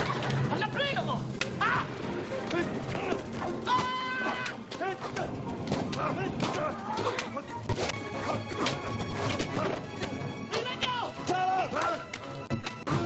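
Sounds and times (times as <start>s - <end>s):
laughter: 0.0s - 0.5s
film music: 0.0s - 13.0s
people shouting: 1.5s - 8.8s, 10.5s - 12.2s.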